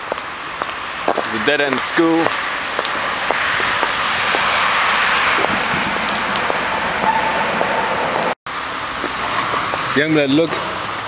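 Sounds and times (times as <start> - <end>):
cars passing on street: 0.0 - 11.0.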